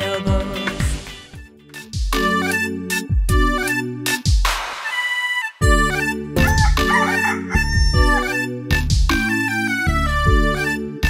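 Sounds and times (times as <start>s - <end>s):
instrumental music: 0.0s - 11.0s
rooster crowing: 6.4s - 8.4s.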